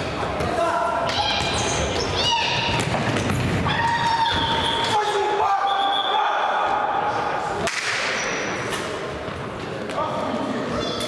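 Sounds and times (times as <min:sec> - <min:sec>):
sports hall background noise: 0:00.0 - 0:11.0
high calls or shoe squeaks: 0:01.1 - 0:02.7, 0:04.2 - 0:05.0.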